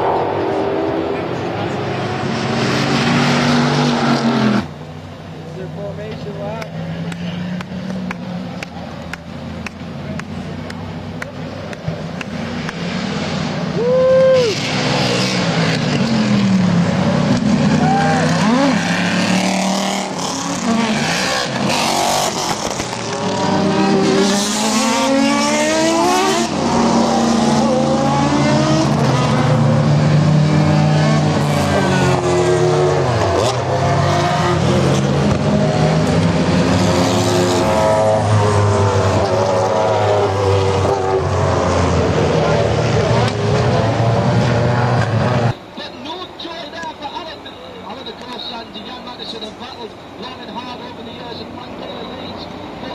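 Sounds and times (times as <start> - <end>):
racing cars passing at speed: 0.0 - 45.8.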